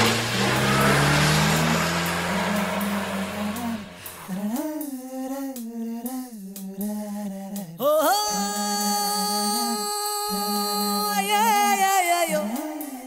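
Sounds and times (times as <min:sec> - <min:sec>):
jeep engine running: 0:00.0 - 0:04.3
road noise rushing: 0:00.0 - 0:04.4
person singing long notes: 0:00.4 - 0:06.3, 0:07.8 - 0:13.0
music: 0:04.2 - 0:13.0.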